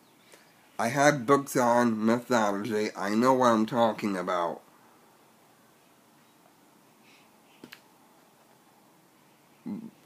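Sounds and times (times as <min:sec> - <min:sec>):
soft clicks: 0:07.6 - 0:07.9.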